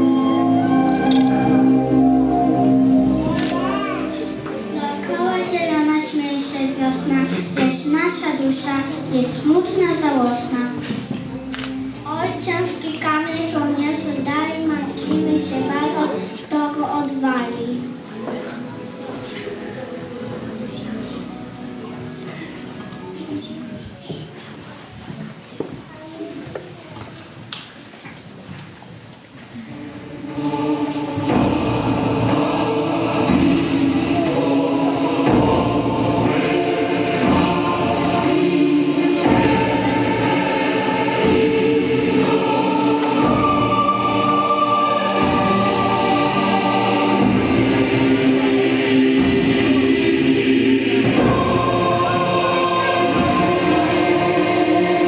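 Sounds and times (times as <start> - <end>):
choir singing long chords: 0.0 - 7.6, 29.6 - 55.0
child speaking through loudspeaker: 3.3 - 4.2, 4.8 - 11.0, 12.1 - 18.0, 24.3 - 27.3.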